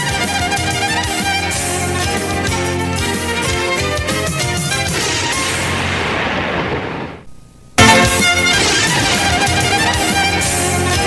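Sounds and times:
orchestral boom crash hit: 5.0 - 10.6.

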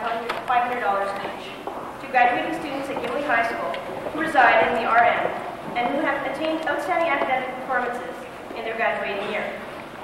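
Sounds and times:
woman speaking into a microphone: 0.0 - 9.7.

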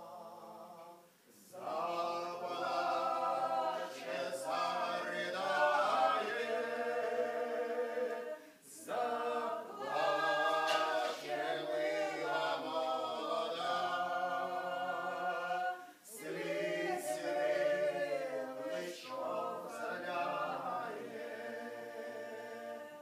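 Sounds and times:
mixed group singing a cappella: 0.0 - 23.0.

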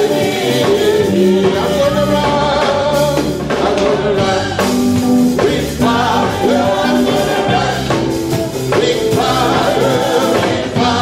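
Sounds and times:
women singing gospel song: 0.0 - 11.0.

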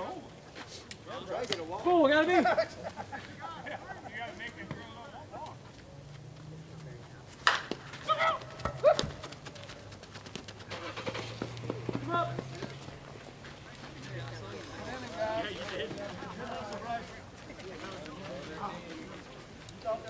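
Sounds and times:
bat hitting softball: 7.4 - 9.2
players shouting: 7.4 - 9.2.

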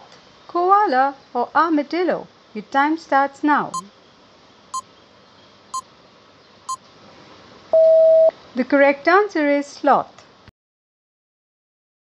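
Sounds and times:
faint hiss: 0.0 - 10.5.

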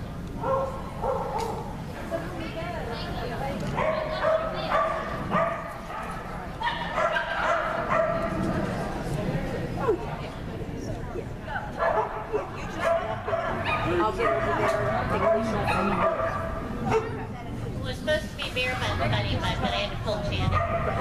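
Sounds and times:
dog barking: 0.4 - 1.7, 3.8 - 8.3, 11.8 - 17.2, 20.5 - 21.0.

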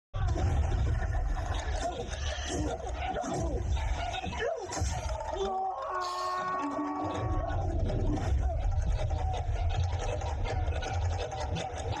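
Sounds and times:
film score held tones: 0.2 - 12.0
deep rumble of battle effects: 4.8 - 12.0.

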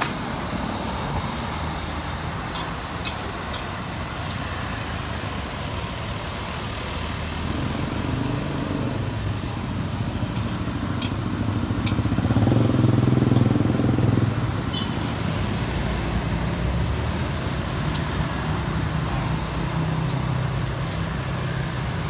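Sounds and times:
vehicles passing: 0.0 - 22.0.

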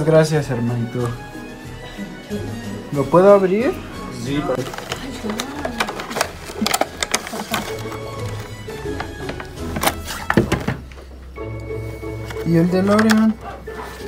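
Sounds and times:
background music: 0.0 - 14.0
plastic tray clicks and rustles: 4.6 - 10.8, 12.9 - 13.3.

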